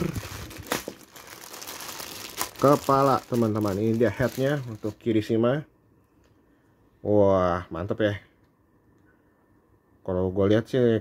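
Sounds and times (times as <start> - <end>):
plastic packaging crinkling: 0.0 - 5.1.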